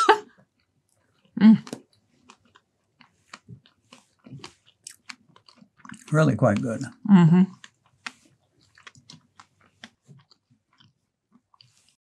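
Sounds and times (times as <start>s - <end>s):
chewing and mouth sounds: 0.2s - 12.0s.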